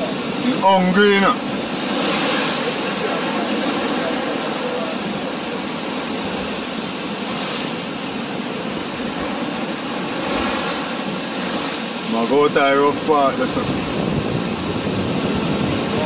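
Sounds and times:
motorboat motor running: 0.0s - 16.0s
rushing water: 0.0s - 16.0s
wind: 0.0s - 16.0s.

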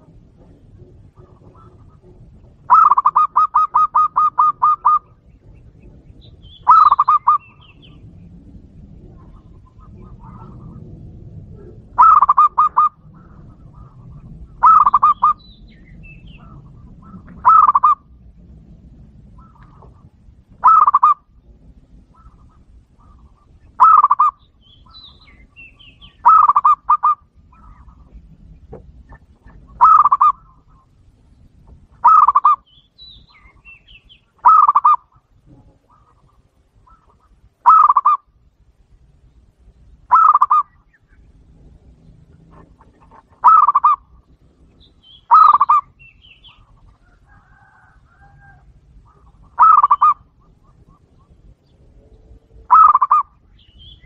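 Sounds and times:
dove cooing: 0.0s - 31.0s, 31.9s - 38.3s, 40.0s - 51.6s, 52.4s - 53.9s.

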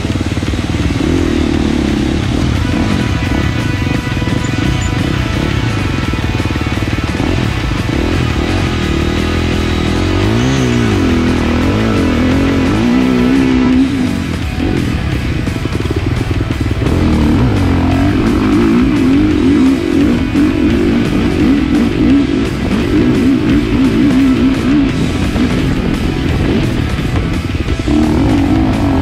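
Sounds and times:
dirt bike engine revving: 0.0s - 29.0s
music playing: 0.0s - 29.0s.

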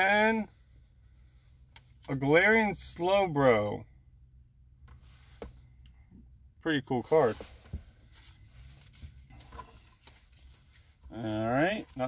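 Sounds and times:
low hum inside a car: 0.0s - 12.0s.

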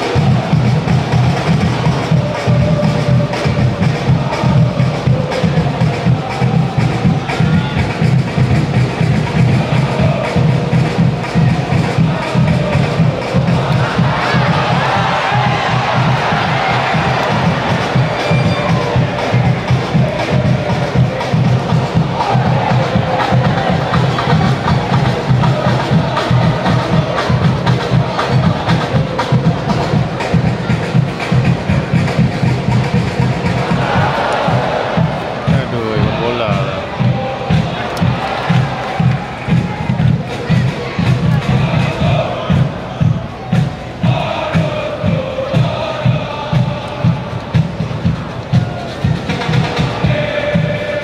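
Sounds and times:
bass drum beat: 0.0s - 51.0s
crowd chanting in unison: 0.0s - 51.0s.

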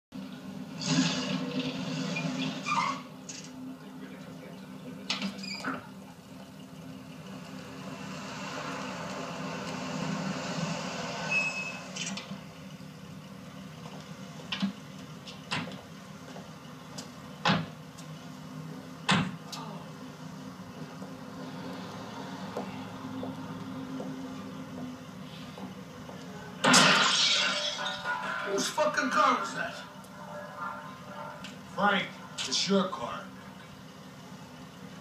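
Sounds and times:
street ambience through tv speaker: 0.2s - 26.8s, 27.9s - 35.0s.

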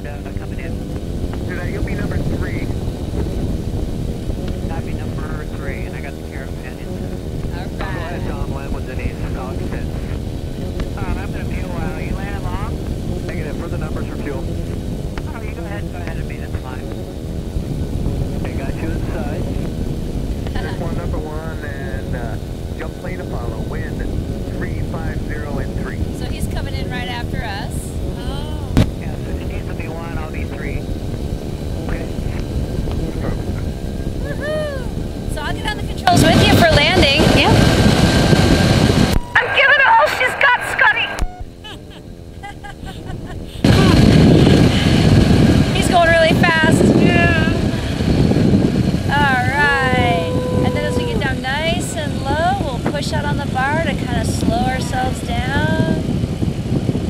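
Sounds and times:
indistinct voices: 0.0s - 0.8s, 1.4s - 2.8s, 4.6s - 10.2s, 11.0s - 14.6s, 15.2s - 17.0s, 18.2s - 19.7s, 20.4s - 30.9s, 31.6s - 48.2s, 49.0s - 56.1s
aircraft engine and propeller: 0.0s - 57.0s.

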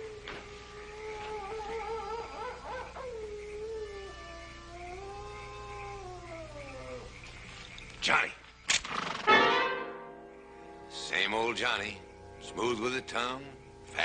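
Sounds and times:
dog howling: 0.0s - 7.2s.

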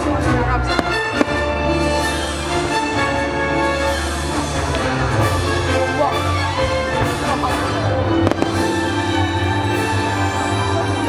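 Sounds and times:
loud show music: 0.0s - 11.0s
sharp firework reports: 8.2s - 9.2s.

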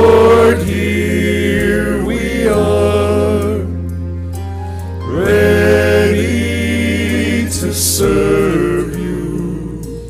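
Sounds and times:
mixed choir singing in harmony: 0.0s - 4.4s, 5.0s - 10.0s.

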